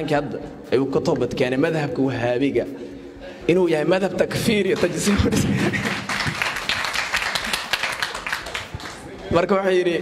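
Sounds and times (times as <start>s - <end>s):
audience applauding: 4.7s - 9.3s.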